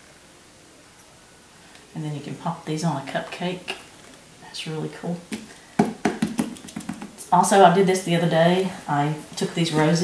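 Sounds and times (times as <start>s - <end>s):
candy molds tapped on tabletop: 5.3s - 7.2s.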